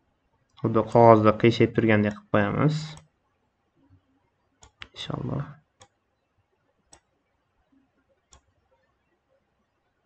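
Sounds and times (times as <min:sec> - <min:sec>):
computer mouse clicks: 0:04.6 - 0:05.0, 0:08.3 - 0:08.5.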